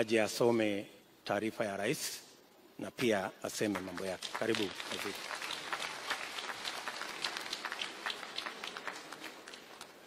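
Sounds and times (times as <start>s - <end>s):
audience applauding: 3.7s - 10.0s.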